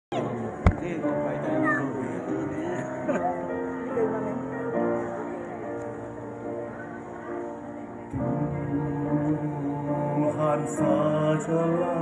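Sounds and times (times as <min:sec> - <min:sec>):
sharp knock: 0:00.7 - 0:00.9.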